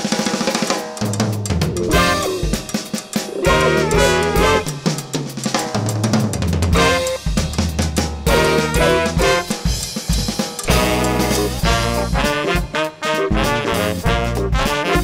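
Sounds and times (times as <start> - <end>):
snare and bass drum groove: 0.0 - 15.0
funk band playing: 0.6 - 15.0
horn riffs: 1.4 - 5.1, 6.7 - 7.4, 8.3 - 9.7, 10.7 - 15.0.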